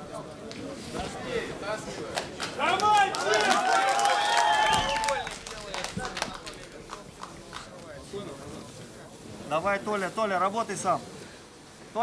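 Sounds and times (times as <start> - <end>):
crowd shouting: 2.6 - 5.4
long drawn-out yell: 2.7 - 5.4.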